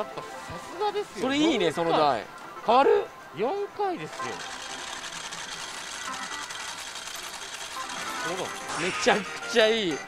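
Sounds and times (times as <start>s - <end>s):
mechanical clatter of machines: 4.1s - 9.2s.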